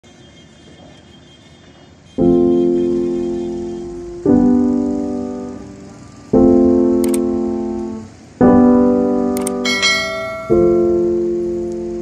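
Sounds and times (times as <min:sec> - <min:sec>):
distant traffic hum: 0:00.0 - 0:12.0.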